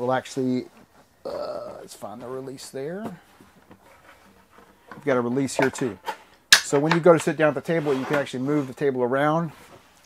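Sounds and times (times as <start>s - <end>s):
soft handling noises: 0.0s - 10.0s.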